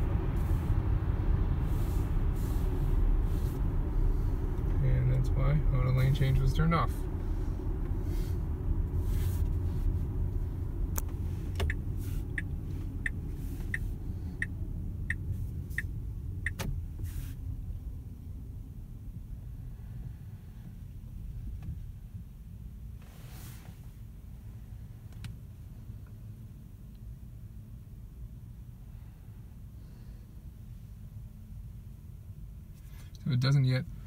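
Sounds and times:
tyre and road rumble in car: 0.0 - 34.0.

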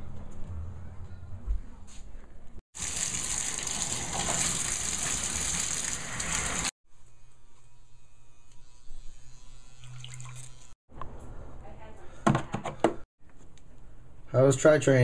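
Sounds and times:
bathtub faucet running: 2.8 - 6.8, 9.8 - 10.6.

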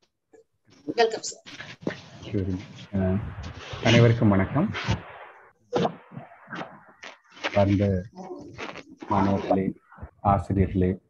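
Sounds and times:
man talking over video call: 2.3 - 4.9, 7.6 - 8.1, 9.1 - 11.0.

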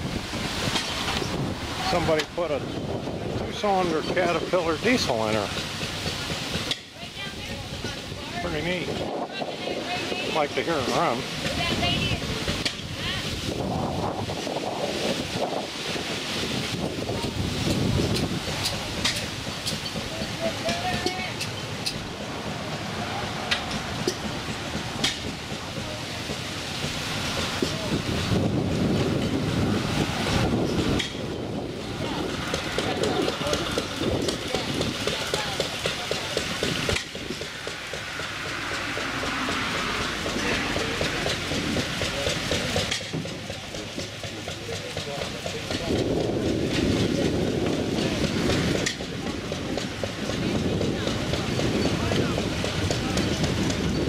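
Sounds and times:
wind buffeting microphone: 0.0 - 44.3, 45.0 - 54.0
people talking: 1.8 - 5.6, 6.2 - 21.6, 22.2 - 26.6, 27.4 - 54.0.

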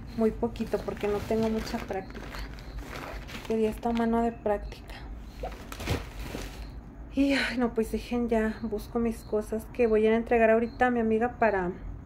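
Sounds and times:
plastic bag rustling: 0.5 - 4.2, 5.3 - 6.8.

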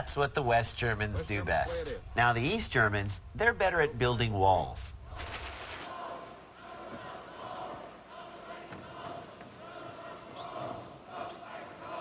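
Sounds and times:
crowd chanting and cheering: 5.0 - 12.0.

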